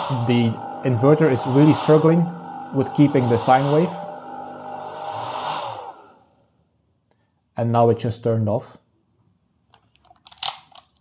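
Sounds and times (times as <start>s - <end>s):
hair dryer fan humming: 0.0s - 6.5s.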